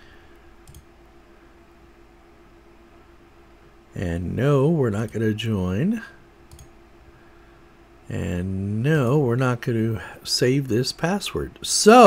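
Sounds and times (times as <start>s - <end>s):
low room hum: 0.0s - 12.0s
faint computer clicks: 0.3s - 0.9s, 6.5s - 6.8s.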